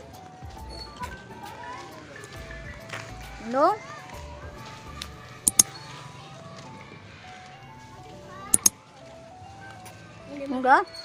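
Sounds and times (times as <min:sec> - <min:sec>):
double clicks with high ring: 0:05.5 - 0:05.7.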